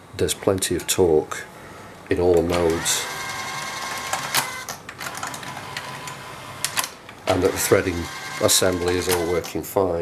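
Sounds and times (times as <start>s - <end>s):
tape mechanism motor whir: 2.5s - 9.5s.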